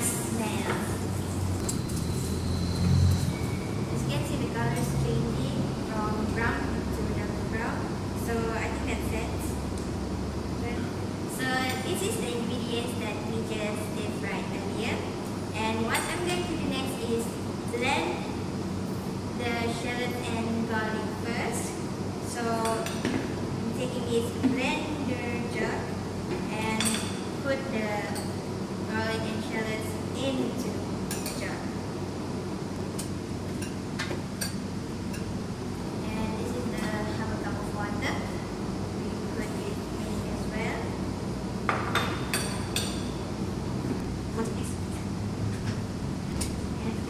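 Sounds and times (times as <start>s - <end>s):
low room hum: 0.0s - 47.0s.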